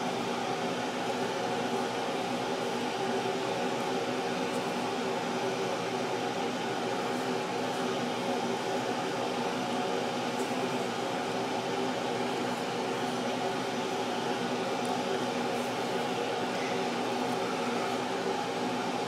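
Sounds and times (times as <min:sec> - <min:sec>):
fan humming: 0:00.0 - 0:19.0.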